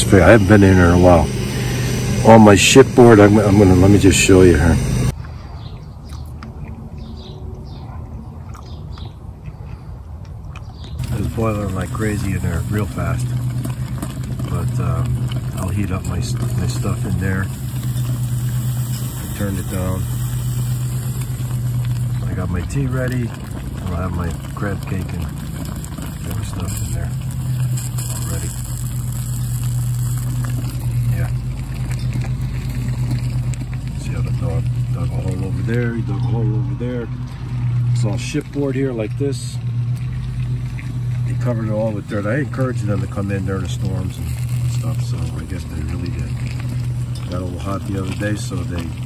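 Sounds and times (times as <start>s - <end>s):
water boiling in a pot: 0.0s - 5.2s, 11.0s - 49.0s
low mechanical hum: 0.0s - 49.0s.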